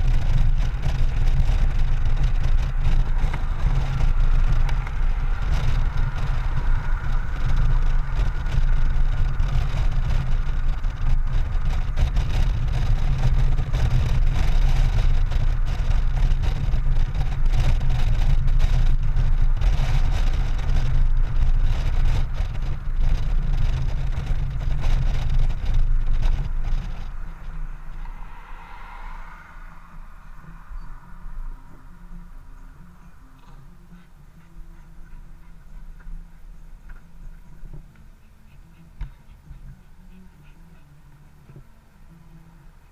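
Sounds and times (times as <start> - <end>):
motorcycle engine: 0.0 - 42.9
road noise: 0.0 - 42.9
wind rumble on microphone: 0.0 - 42.9.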